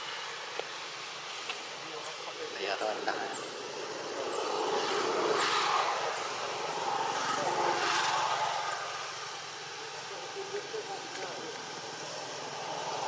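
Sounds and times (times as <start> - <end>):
passing vehicle engine: 2.3 - 13.0.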